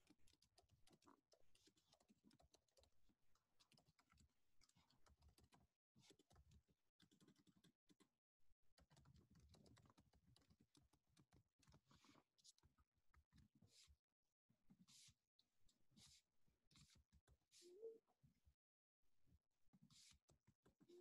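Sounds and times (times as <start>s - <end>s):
typing on computer keyboard: 0.0s - 8.1s, 8.8s - 12.6s.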